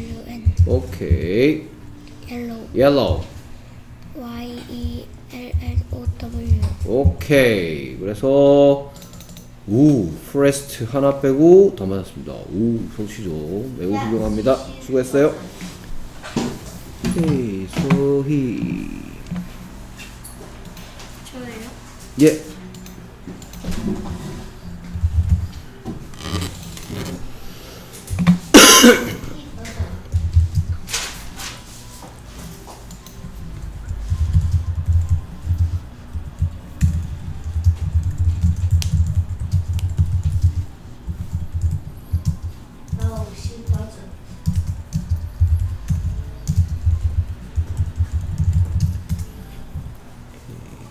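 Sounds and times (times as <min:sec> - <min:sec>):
typing on computer keyboard: 0:08.9 - 0:09.5, 0:33.8 - 0:49.3
person coughing: 0:28.5 - 0:29.4.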